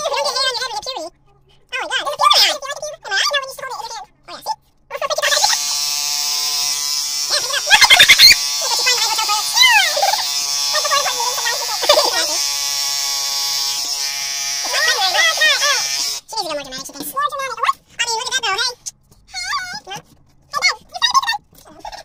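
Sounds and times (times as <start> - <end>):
high-pitched chipmunk-like voices: 1.8 - 5.6, 7.3 - 10.2, 14.7 - 22.0
electric hair clipper buzzing: 5.3 - 16.3
laughter: 7.6 - 8.4.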